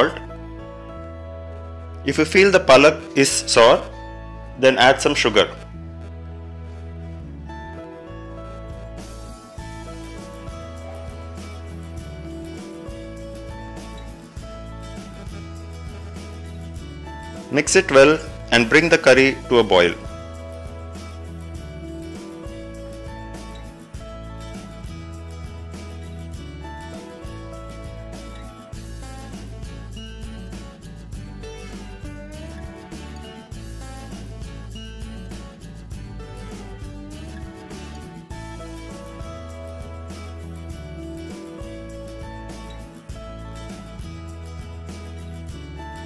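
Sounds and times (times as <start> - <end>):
instrumental background music: 0.0 - 46.0.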